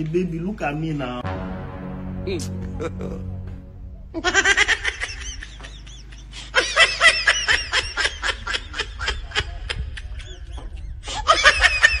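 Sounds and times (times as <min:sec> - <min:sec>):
high-pitched laughter: 0:04.2 - 0:12.0.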